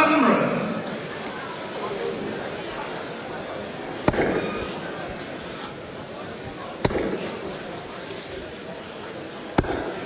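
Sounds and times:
murmur of large crowd: 0:00.0 - 0:10.0.

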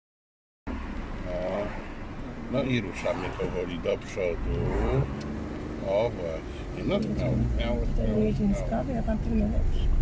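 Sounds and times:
car engine hum and road noise: 0:00.7 - 0:10.0.

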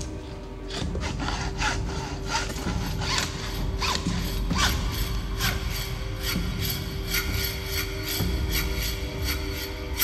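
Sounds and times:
hacksaw cutting metal tube: 0:00.8 - 0:04.8.

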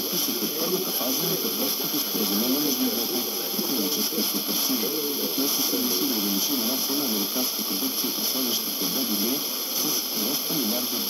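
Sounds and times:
muffled voice on radio: 0:00.0 - 0:11.0
radio static hiss: 0:00.0 - 0:11.0.

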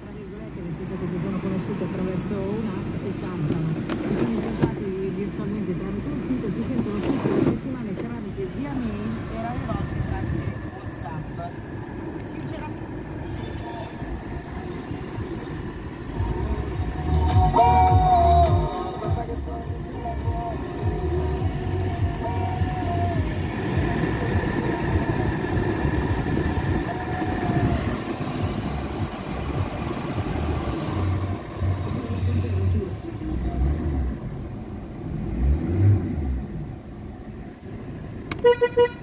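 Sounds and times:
motor vehicle rumbling: 0:00.0 - 0:39.0.

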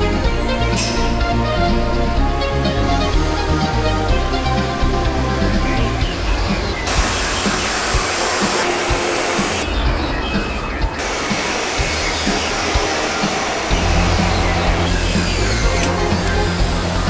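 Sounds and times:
background music with bass line: 0:00.0 - 0:17.0
rushing factory noise: 0:06.0 - 0:17.0.

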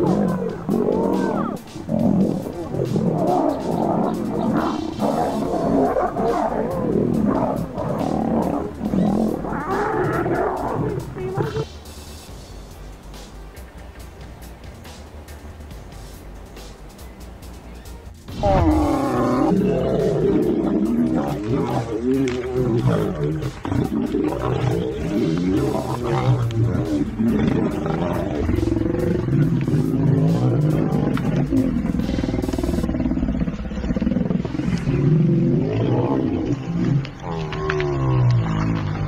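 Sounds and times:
lions growling and roaring: 0:00.0 - 0:12.6, 0:18.3 - 0:39.0.

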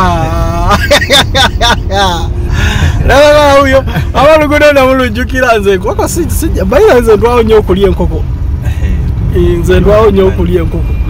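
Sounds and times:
road and engine rumble in car: 0:00.0 - 0:11.0
man talking: 0:03.0 - 0:08.3, 0:09.2 - 0:10.9.

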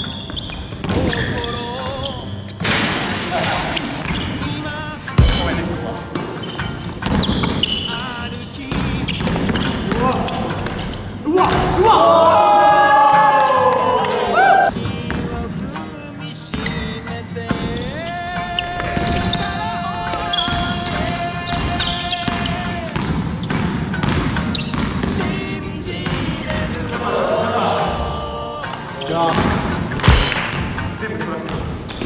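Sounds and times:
background music: 0:00.0 - 0:32.0
basketball bouncing on hardwood: 0:05.2 - 0:07.8, 0:08.7 - 0:10.8, 0:22.3 - 0:25.2, 0:29.3 - 0:30.9.

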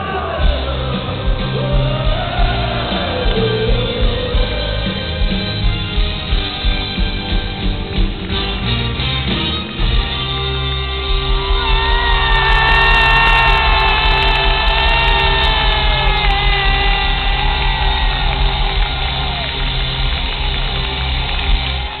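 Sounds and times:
rock band holding a note: 0:00.5 - 0:22.0.

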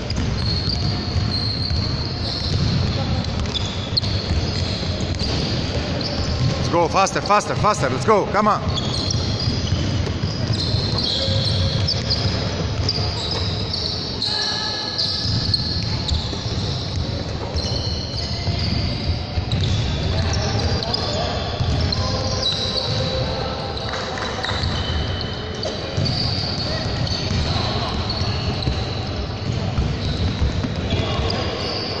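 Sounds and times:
basketballs bouncing on wooden floor: 0:00.0 - 0:06.8, 0:08.6 - 0:14.0, 0:15.2 - 0:23.2, 0:24.2 - 0:31.8
sneaker squeaks: 0:00.0 - 0:32.0.

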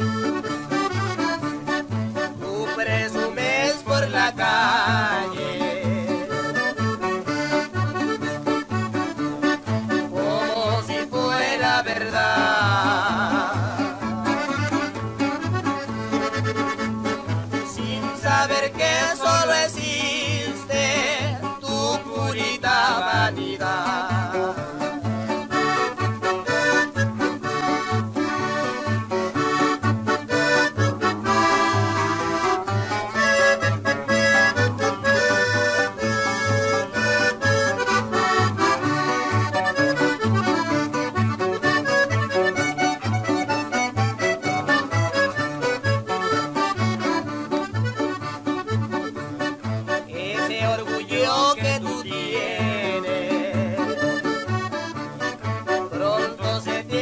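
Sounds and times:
button accordion melody: 0:00.0 - 0:57.0.

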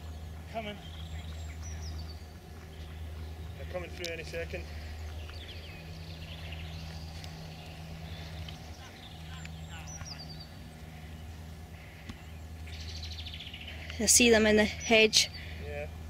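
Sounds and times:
small birds chirping: 0:00.0 - 0:16.0
steady low hum: 0:00.0 - 0:16.0.

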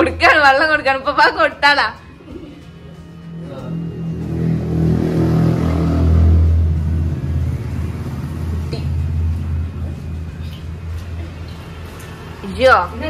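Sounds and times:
engine running: 0:02.1 - 0:13.0.

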